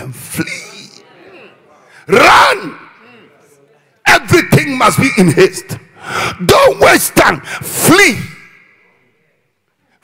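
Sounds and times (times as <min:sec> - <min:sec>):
man shouting through microphone: 0:02.1 - 0:03.0, 0:06.4 - 0:08.6.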